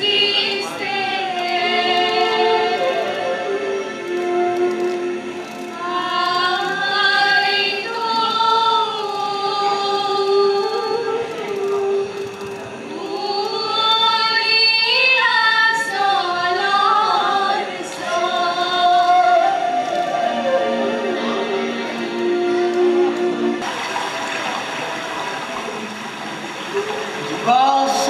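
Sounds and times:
choir singing long held notes: 0:00.0 - 0:28.0.

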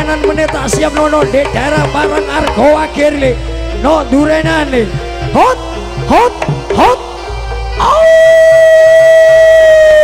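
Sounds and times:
man shouting over loudspeaker: 0:00.0 - 0:10.0.

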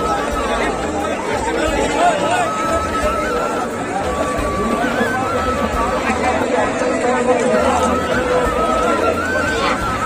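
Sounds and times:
babble of overlapping voices: 0:00.0 - 0:10.0.

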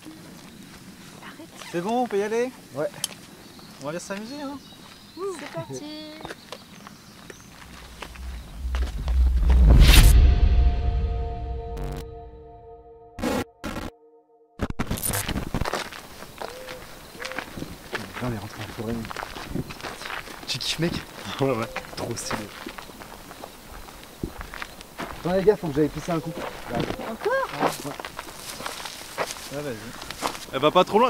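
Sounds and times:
footsteps on forest ground: 0:02.8 - 0:09.2, 0:15.6 - 0:30.6
digital glitch crackle: 0:14.6 - 0:15.3
footsteps through undergrowth: 0:26.3 - 0:30.6.

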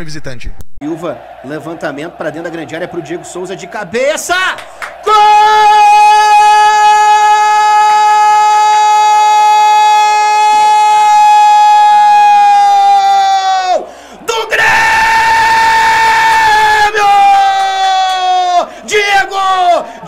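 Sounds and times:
man shouting long goal cry: 0:01.1 - 0:20.0
man breathing in: 0:13.9 - 0:14.3, 0:18.7 - 0:18.9.

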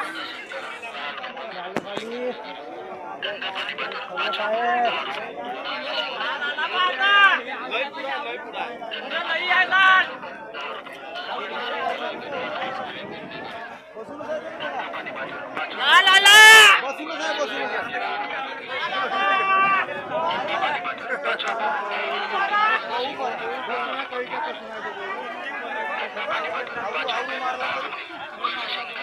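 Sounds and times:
crowd of men chattering: 0:00.0 - 0:29.0
men talking over one another: 0:00.0 - 0:29.0.

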